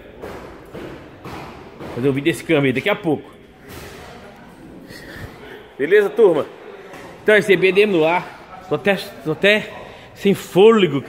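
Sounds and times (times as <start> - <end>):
workshop background noise: 0.0 - 11.0.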